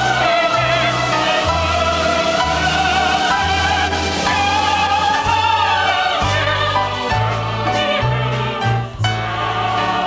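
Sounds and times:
opera singers and chorus: 0.0s - 10.0s
orchestra playing: 0.0s - 10.0s.

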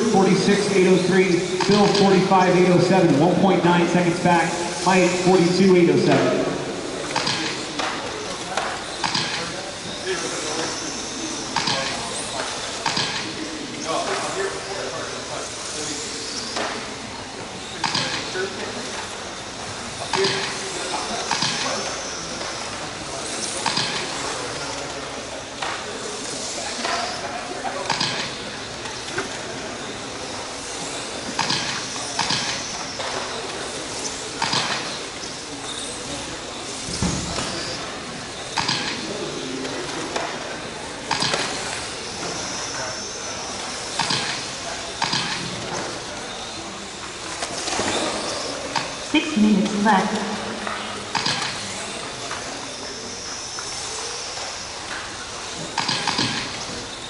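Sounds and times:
tyres and chassis sharp sounds: 0.0s - 57.0s.

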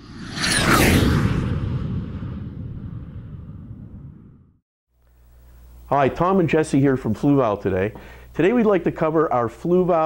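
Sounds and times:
whoosh low rumble: 0.0s - 4.6s.

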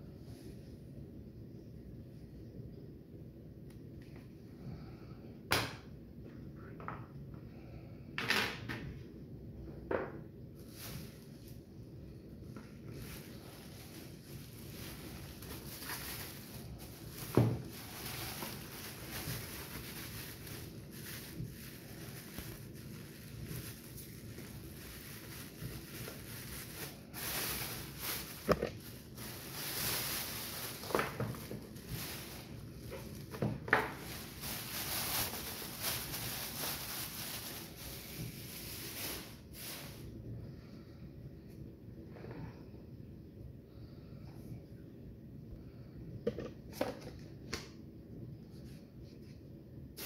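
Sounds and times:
plastic bag crinkling: 10.6s - 11.6s, 12.4s - 40.1s.

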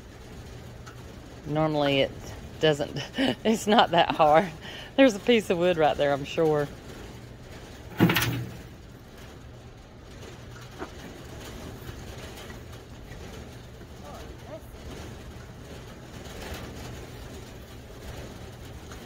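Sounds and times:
low steady hum: 0.0s - 19.0s.

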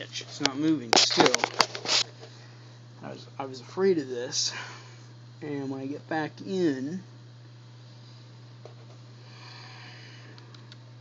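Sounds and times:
low electrical hum: 0.0s - 11.0s
soft breath: 9.2s - 10.5s.

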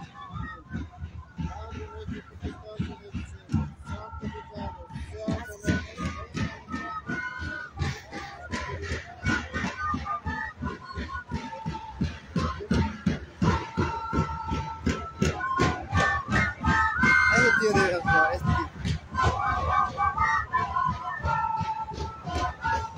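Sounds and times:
crowd voices: 0.0s - 22.9s
flute band playing melody: 0.0s - 22.9s
steady drumbeat: 0.0s - 22.9s.

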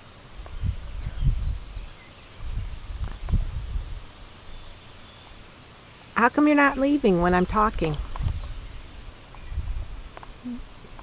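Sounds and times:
low rumble on microphone: 0.4s - 4.6s, 7.0s - 11.0s.

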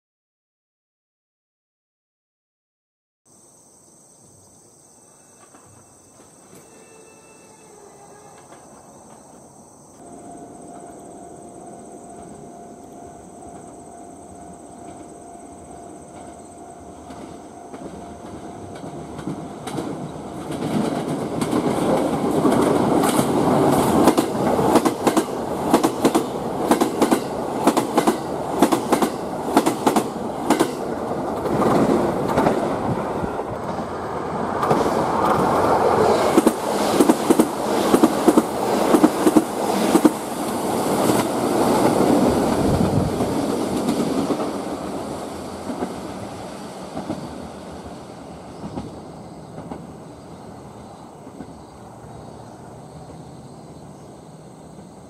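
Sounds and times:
train rolling rush: 5.2s - 55.0s
train wheel clacks: 16.1s - 32.9s, 34.6s - 50.1s.

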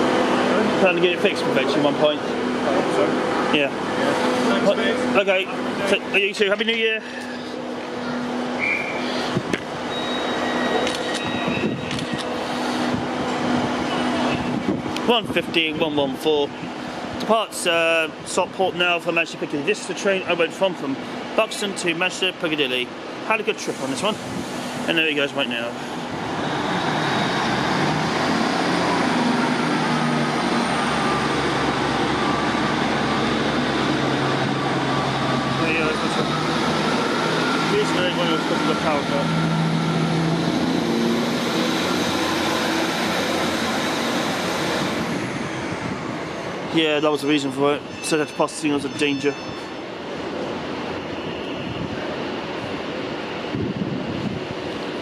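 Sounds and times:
diesel train accelerating past: 0.0s - 18.2s, 22.5s - 55.0s.

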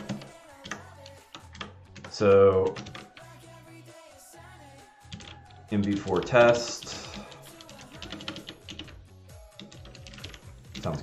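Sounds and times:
computer keyboard typing: 0.0s - 3.3s, 5.1s - 11.0s
quiet music: 0.0s - 11.0s.

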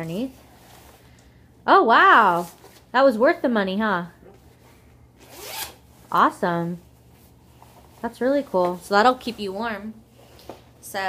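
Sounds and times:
jacket zipper pulled up: 5.2s - 5.9s.

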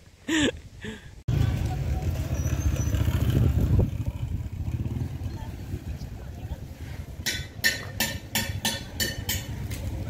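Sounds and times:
motorcycle engine rumbling: 1.2s - 10.0s.

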